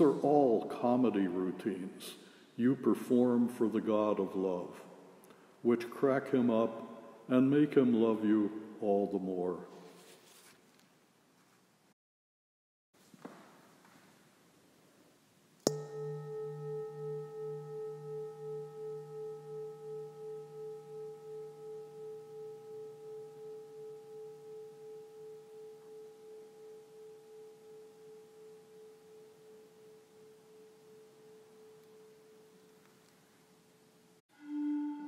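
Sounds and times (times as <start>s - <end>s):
meditation bell ringing: 15.7s - 32.8s.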